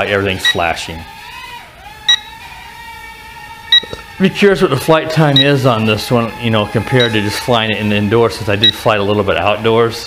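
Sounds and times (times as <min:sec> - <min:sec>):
drone motors whining: 0:00.0 - 0:10.0
controller beeps: 0:02.1 - 0:02.3, 0:03.7 - 0:04.0, 0:05.3 - 0:05.6.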